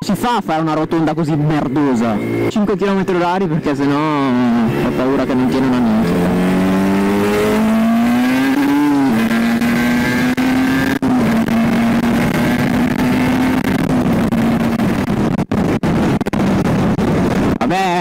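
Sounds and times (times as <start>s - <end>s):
motorcycle engine revving: 0.0s - 17.6s
wind noise: 0.0s - 18.0s.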